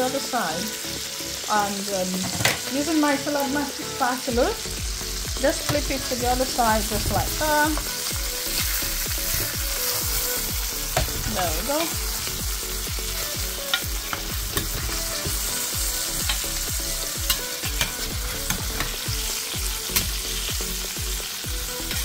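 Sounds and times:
chicken sizzling in a pan: 0:00.0 - 0:22.0.

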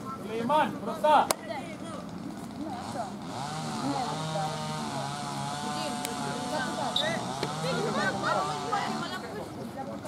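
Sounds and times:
small engine running: 0:01.9 - 0:10.0.

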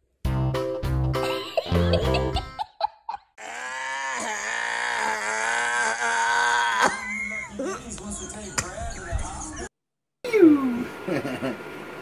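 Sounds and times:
music: 0:00.2 - 0:02.5.

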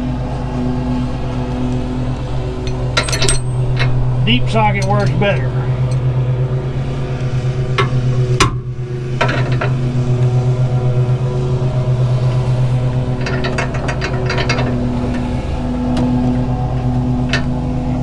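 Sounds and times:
low pulsing engine-like hum: 0:00.0 - 0:18.0
metal clink: 0:02.6 - 0:04.0, 0:13.2 - 0:15.2.

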